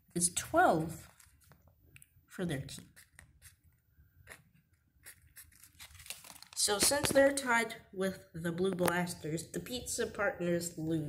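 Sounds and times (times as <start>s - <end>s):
pen scratching on paper: 2.7s - 5.7s.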